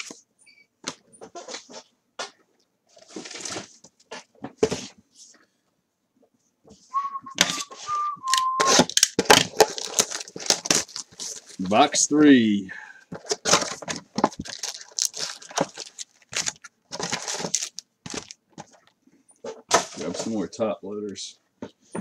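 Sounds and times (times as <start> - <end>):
person whistling: 6.9 - 8.8.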